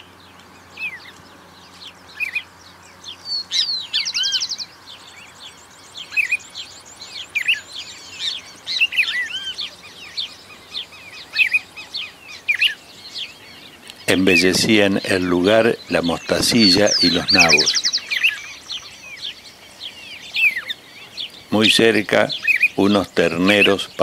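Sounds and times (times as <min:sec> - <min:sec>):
birds chirping: 0:00.0 - 0:24.0
fast high bird trill: 0:00.0 - 0:24.0.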